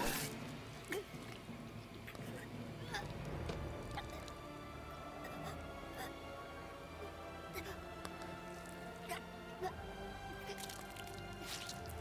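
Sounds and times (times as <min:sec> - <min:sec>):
tense film score: 0:00.0 - 0:12.0.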